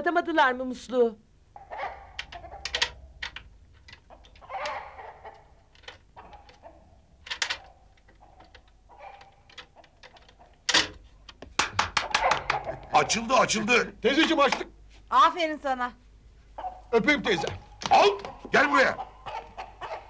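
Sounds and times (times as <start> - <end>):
lock clacking: 2.2 - 4.8, 5.7 - 6.6, 7.2 - 11.0
lock picks clicking in door lock: 2.2 - 4.8, 7.2 - 8.6.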